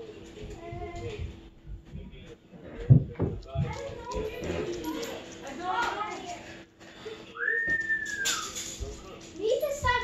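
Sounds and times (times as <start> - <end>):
faint indistinct voices: 0.0 - 10.0
whistled note sliding up: 7.4 - 8.6.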